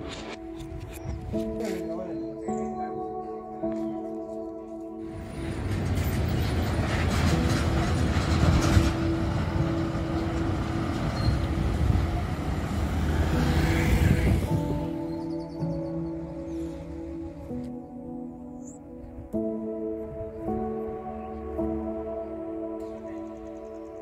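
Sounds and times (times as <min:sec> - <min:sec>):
soft background music: 0:00.0 - 0:24.0
highway traffic passing: 0:05.0 - 0:17.4
vehicle passing by: 0:09.9 - 0:15.0.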